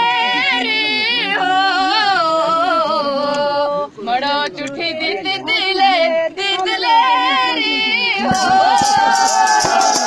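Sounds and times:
woman singing unaccompanied: 0.0s - 10.0s.

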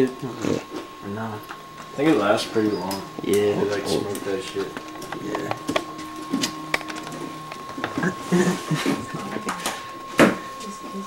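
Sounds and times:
low voices: 0.0s - 5.9s, 7.2s - 11.0s
steady high tone: 0.0s - 11.0s.

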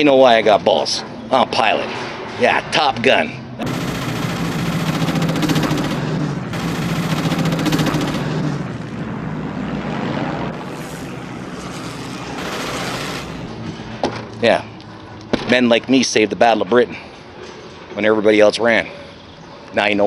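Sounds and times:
propeller plane engines droning: 0.0s - 20.0s
machine-gun fire: 3.6s - 8.7s, 10.6s - 13.6s.

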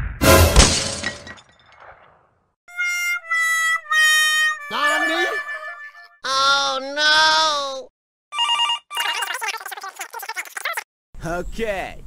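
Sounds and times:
crash: 0.0s - 2.4s.

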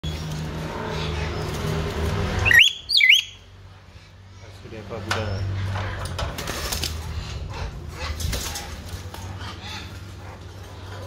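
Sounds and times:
bird whistling: 2.4s - 3.4s.

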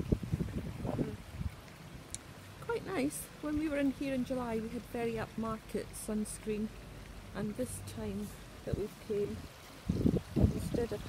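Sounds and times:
wind buffeting a microphone: 0.0s - 1.7s, 8.6s - 11.0s.

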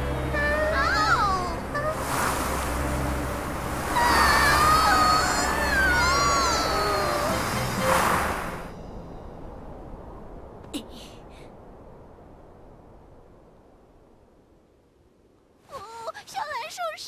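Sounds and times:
background music: 0.0s - 9.3s
cartoon magic whoosh: 3.8s - 8.7s.

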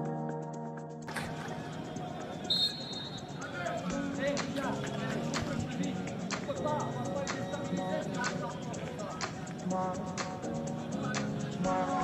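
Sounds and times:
high whistle tone: 2.4s - 3.4s.

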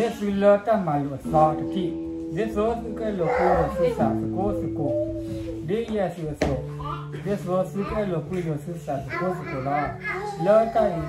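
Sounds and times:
man speaking: 0.0s - 11.0s
soft instrumental music: 0.0s - 11.0s.

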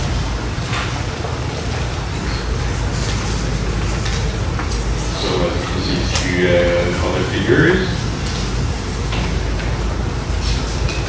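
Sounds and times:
room noise rumble and hiss: 0.0s - 11.0s.

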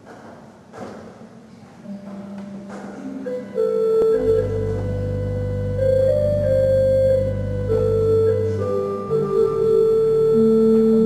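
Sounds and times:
pipe organ sustained notes: 3.1s - 11.0s.

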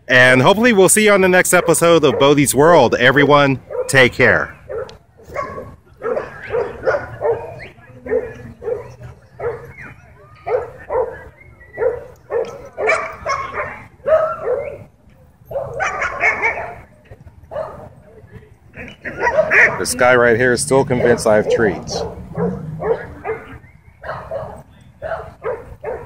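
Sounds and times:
dog yipping and barking: 4.6s - 14.8s, 15.5s - 16.8s, 19.0s - 19.9s, 21.4s - 26.0s.

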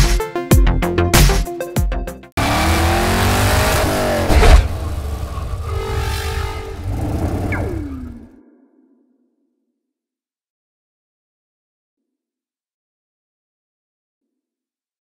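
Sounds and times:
electronic music with heavy beat: 0.0s - 2.2s
car engine revving and passing: 2.4s - 8.4s
falling electronic tone: 4.0s - 8.7s.

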